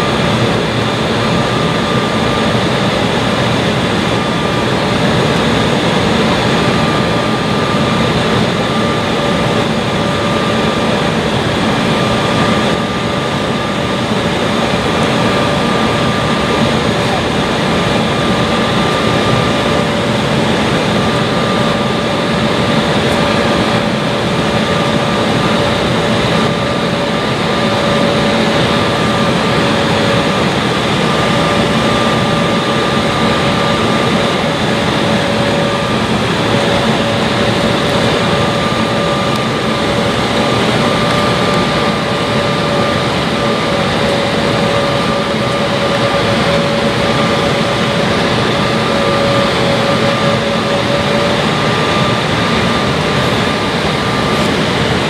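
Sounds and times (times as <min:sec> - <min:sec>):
airflow rushing: 0:00.0 - 0:55.0
jet engines humming: 0:00.0 - 0:55.0
steady whining tones: 0:00.0 - 0:55.0.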